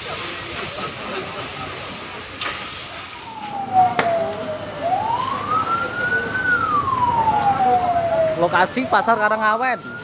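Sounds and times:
emergency vehicle siren wailing: 2.6s - 10.0s.

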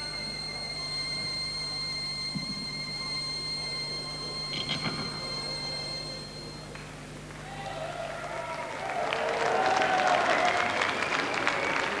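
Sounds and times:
audience applauding: 7.4s - 12.0s.

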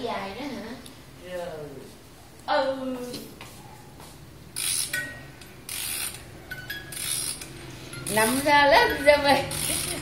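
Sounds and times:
clockwork ratchet clicks: 4.6s - 10.0s.

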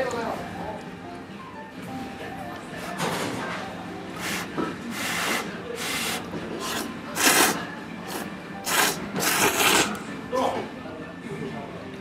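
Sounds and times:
person slurping noodles: 4.2s - 10.0s.

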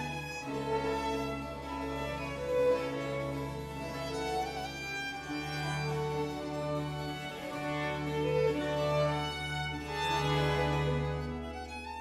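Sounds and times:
baroque string orchestra: 0.0s - 12.0s.

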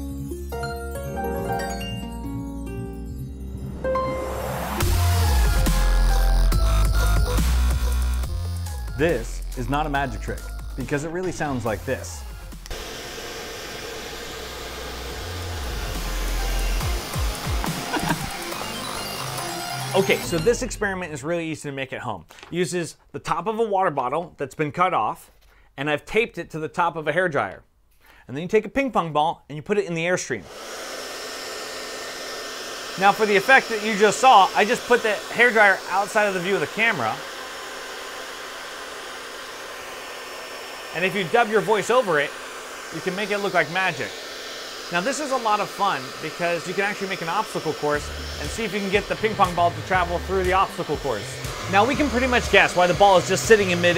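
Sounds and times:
hair dryer blowing: 4.2s - 20.7s, 30.4s - 53.9s.

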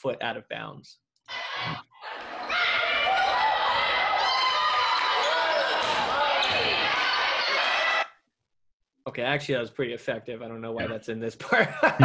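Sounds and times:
crowd in a gym: 1.3s - 8.2s.

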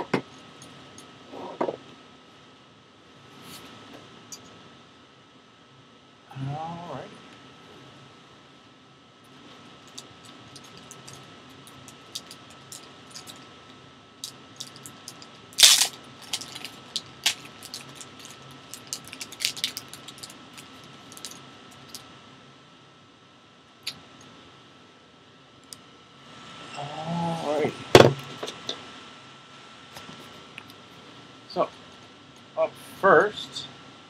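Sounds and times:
plastic wrap crinkling: 14.2s - 22.0s.

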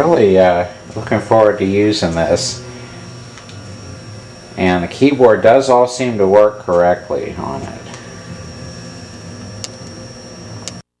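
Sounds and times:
computer fan and drive hum: 0.0s - 10.9s
thin high whine: 0.0s - 11.0s.

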